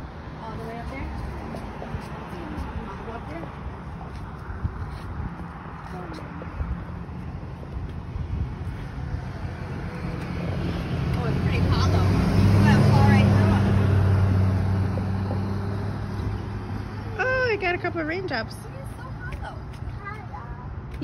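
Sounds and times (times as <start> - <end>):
motor vehicle passing by: 0.0 - 20.1.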